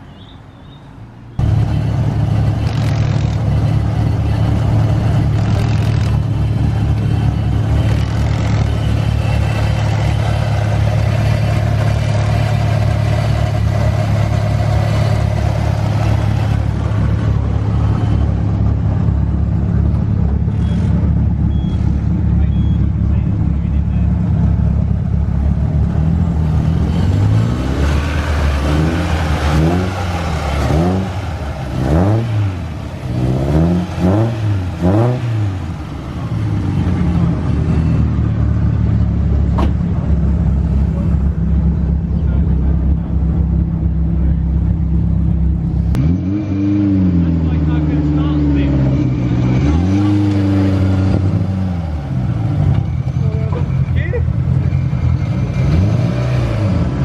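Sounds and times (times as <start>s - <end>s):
car engine idling and revving: 1.2s - 57.0s.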